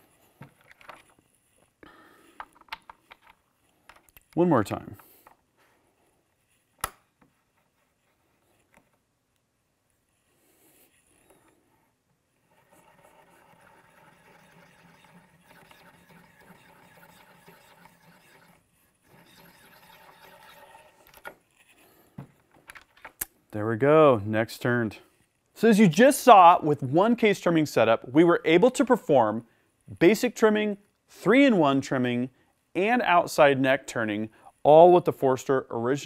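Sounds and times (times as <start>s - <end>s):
hand-cranked trimmer whirring: 12.4s - 21.3s.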